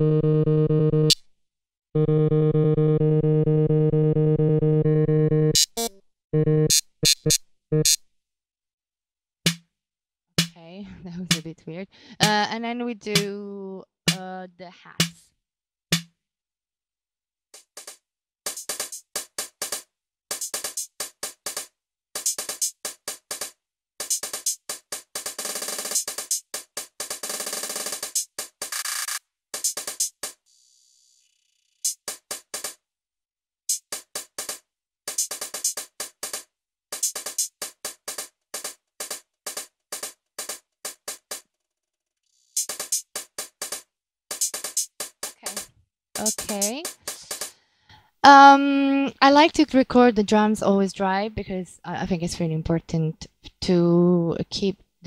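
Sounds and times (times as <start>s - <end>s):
drum machine beat: 4.8s - 8.0s, 10.4s - 11.6s, 12.2s - 13.4s, 14.1s - 14.4s, 15.0s - 15.2s, 17.6s - 30.4s, 31.9s - 32.8s, 33.7s - 36.4s, 37.0s - 41.4s, 42.6s - 47.5s.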